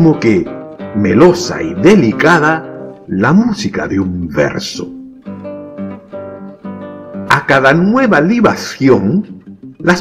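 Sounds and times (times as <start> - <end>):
acoustic guitar plucked notes: 0.0 - 10.0.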